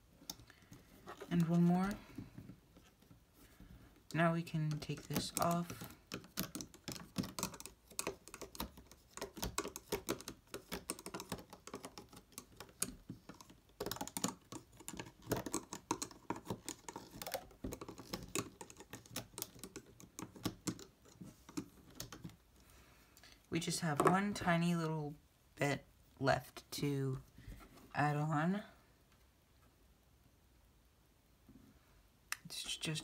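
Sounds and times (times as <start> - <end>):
plastic hook clicking on pegs: 4.6 - 22.3.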